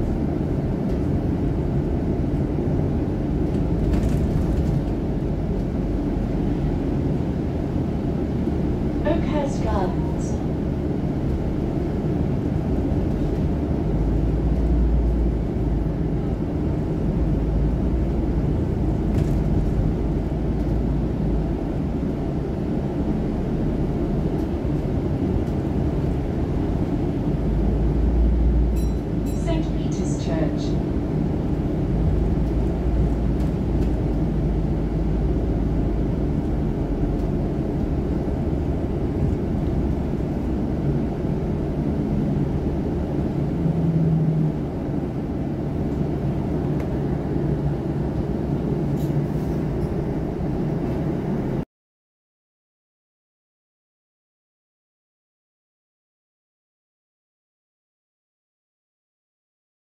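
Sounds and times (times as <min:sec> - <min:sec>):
bus engine rumble and road noise: 0:00.0 - 0:51.6.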